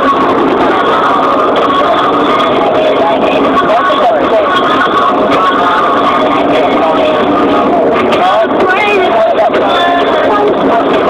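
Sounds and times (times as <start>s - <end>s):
car road and engine noise: 0.0s - 11.0s
faint voice: 0.0s - 11.0s.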